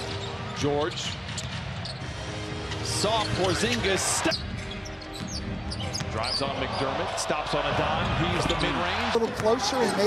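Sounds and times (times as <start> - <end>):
arena crowd hum: 6.0 - 10.0.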